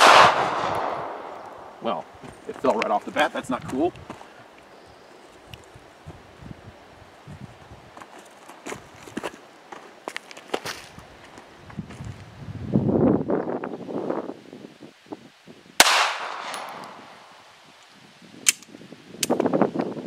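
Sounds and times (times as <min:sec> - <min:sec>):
pistol shot: 0:00.0 - 0:01.4, 0:15.8 - 0:17.1
weaker sharp crack: 0:00.0 - 0:01.8, 0:15.8 - 0:17.1.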